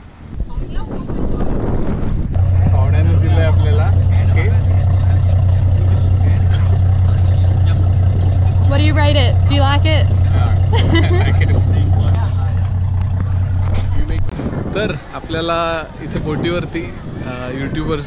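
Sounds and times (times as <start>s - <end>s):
boat engine droning: 0.0s - 18.0s
voices: 2.4s - 18.0s.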